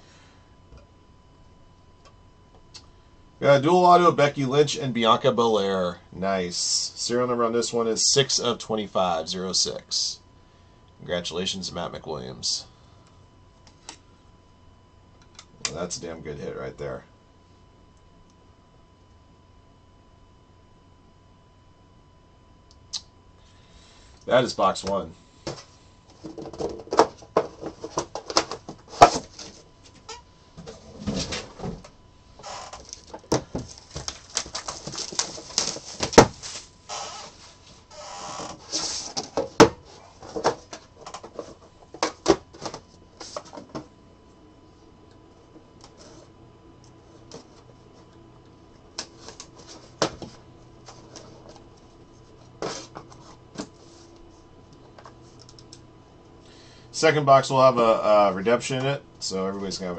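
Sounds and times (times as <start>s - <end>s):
packaging rustling: 32.8s - 37.6s.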